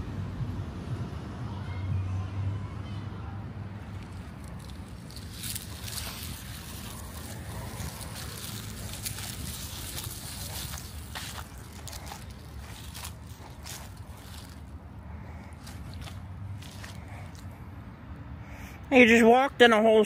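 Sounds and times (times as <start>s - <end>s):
steady low rumble: 3.6s - 18.0s
footsteps on grass and leaves: 3.8s - 17.5s
rustling: 3.9s - 17.5s.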